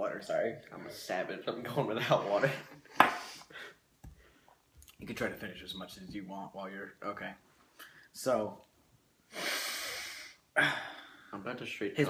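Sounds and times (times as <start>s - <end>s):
person breathing noisily: 9.3s - 11.3s.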